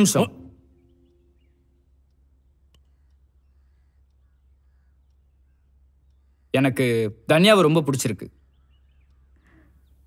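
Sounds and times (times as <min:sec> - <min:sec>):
steady low hum: 0:00.0 - 0:07.3
distant bird calls: 0:00.0 - 0:10.0.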